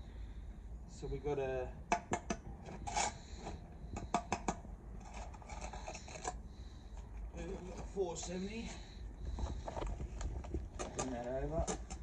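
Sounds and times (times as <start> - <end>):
trowel tapping bricks: 4.0 - 4.6
trowel scraping mortar: 5.0 - 6.4.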